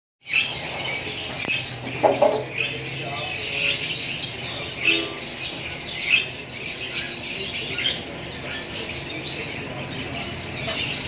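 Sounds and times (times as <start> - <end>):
birds chirping: 0.2 - 11.0.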